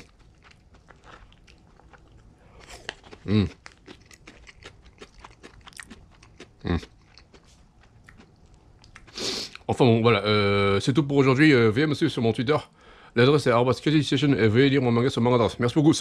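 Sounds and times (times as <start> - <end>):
person chewing food: 0.0 - 9.7
person humming mmh: 3.2 - 3.6, 6.6 - 6.9.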